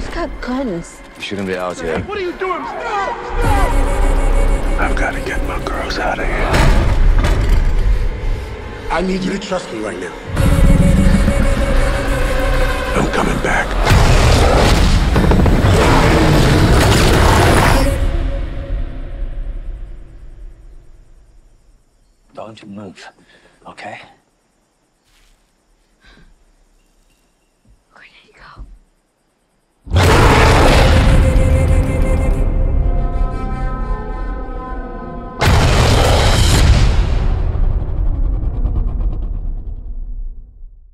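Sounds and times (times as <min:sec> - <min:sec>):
movie trailer music with booming hits: 0:03.4 - 0:09.2, 0:10.3 - 0:21.2, 0:29.9 - 0:40.9
faint fluttering pulse: 0:10.3 - 0:13.0
low rumble: 0:10.3 - 0:17.6.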